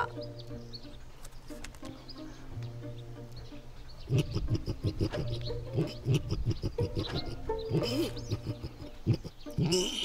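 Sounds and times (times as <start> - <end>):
man imitating pig calls: 4.1 - 10.0.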